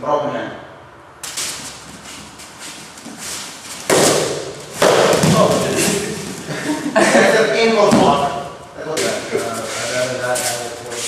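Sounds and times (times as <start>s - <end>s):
training staffs knocking: 1.2s - 6.9s, 7.8s - 9.2s.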